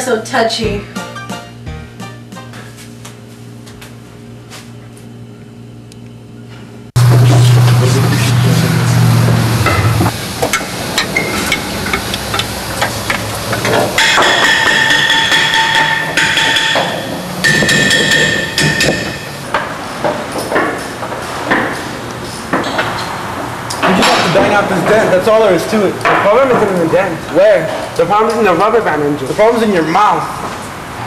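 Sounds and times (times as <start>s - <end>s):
loud low hum: 6.9s - 19.6s
tools clanking on metal: 10.5s - 21.8s, 23.7s - 25.1s.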